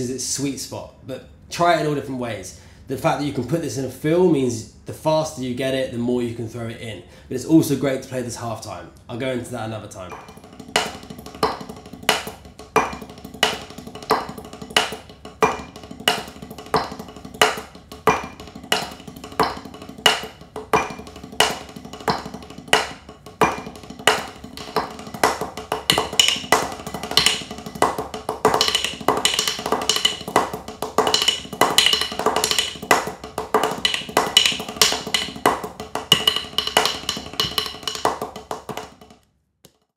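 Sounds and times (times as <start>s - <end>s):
drumsticks on a practice pad: 10.1s - 39.9s.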